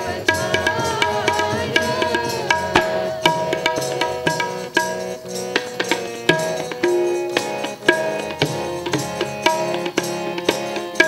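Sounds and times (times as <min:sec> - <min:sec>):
harmonium melody: 0:00.0 - 0:11.0
tabla beat: 0:00.0 - 0:11.0.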